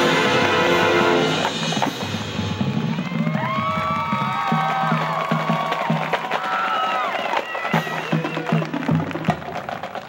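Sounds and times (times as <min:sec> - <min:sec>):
brass sustaining a chord: 0:00.0 - 0:01.5
steady drum beat: 0:00.0 - 0:10.0.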